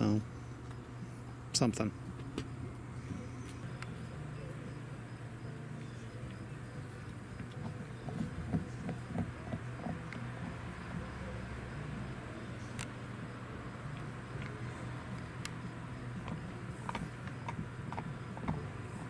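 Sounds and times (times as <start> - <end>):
low background hum: 0.0 - 19.0.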